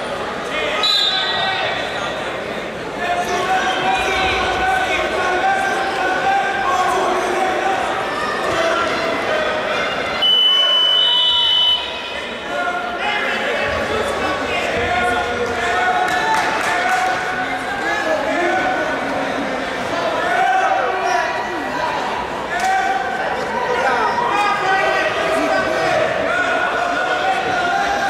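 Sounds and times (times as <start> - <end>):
crowd chatter echoing: 0.0 - 28.0.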